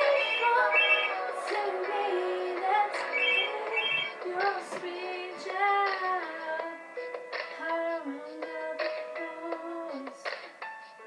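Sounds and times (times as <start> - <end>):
music: 0.0 - 11.0
phone ringtone electronic tones: 0.1 - 1.2, 3.2 - 4.2.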